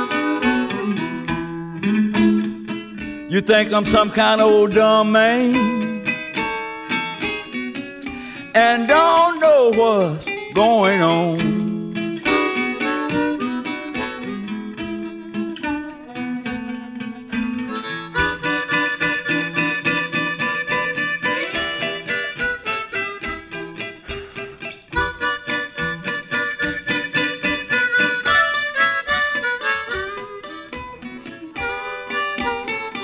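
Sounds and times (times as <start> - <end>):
blues harmonica: 0.0 - 33.0
electric blues band with guitar: 0.0 - 33.0.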